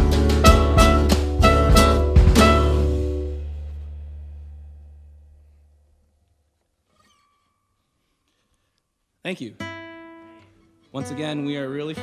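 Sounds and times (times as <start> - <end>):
acoustic guitar chord ringing: 0.0 - 5.1, 9.6 - 12.0
deep bass note: 0.0 - 5.9.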